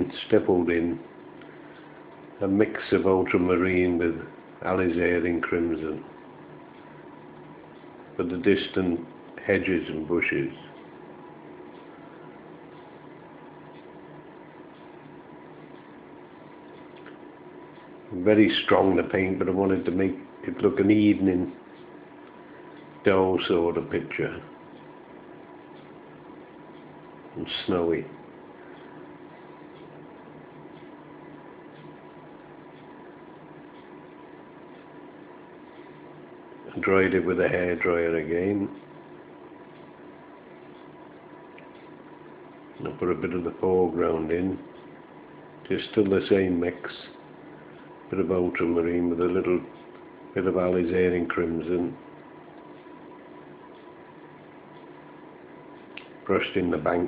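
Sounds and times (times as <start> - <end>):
light hum: 0.0 - 57.0
recording hiss: 0.0 - 57.0.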